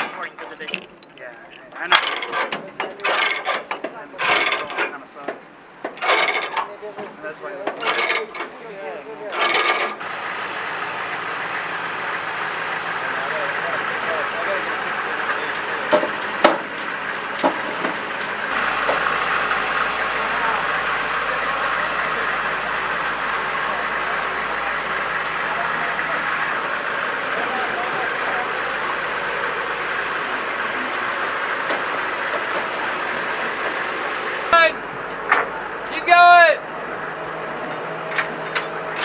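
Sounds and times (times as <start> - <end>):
diesel engine running: 0.0 - 39.0
chain clattering: 0.2 - 4.9, 6.0 - 6.7, 7.8 - 8.5, 9.4 - 10.0
sharp knocks: 15.9 - 16.8.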